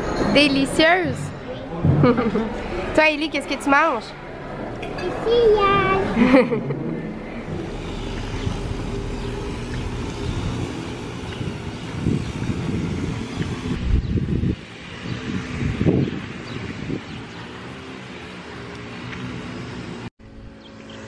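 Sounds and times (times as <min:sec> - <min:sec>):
wind buffeting microphone: 0:06.0 - 0:17.8.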